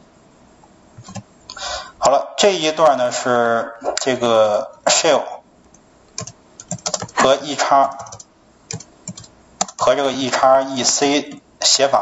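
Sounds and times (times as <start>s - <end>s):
typing on computer keyboard: 6.2s - 7.2s, 7.9s - 9.9s.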